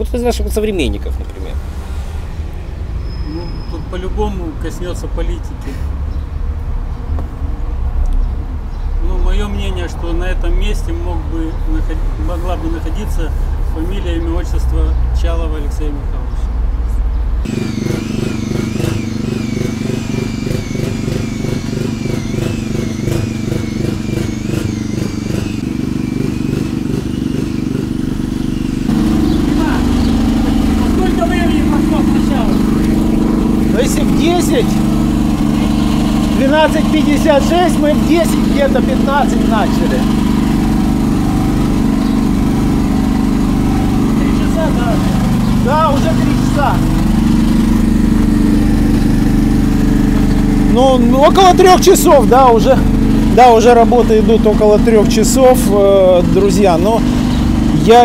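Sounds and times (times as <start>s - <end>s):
motor humming: 17.5s - 58.0s.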